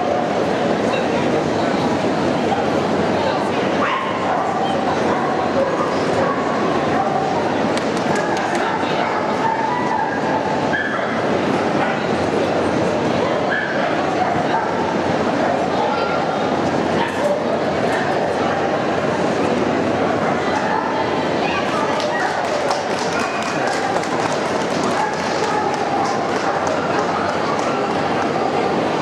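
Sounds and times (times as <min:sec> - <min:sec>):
crowd chatter: 0:00.0 - 0:29.0.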